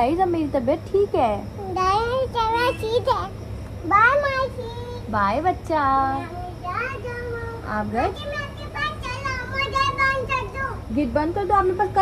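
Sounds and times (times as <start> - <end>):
steady low hum: 0.0 - 12.0
young child talking: 1.6 - 5.1, 6.2 - 10.9.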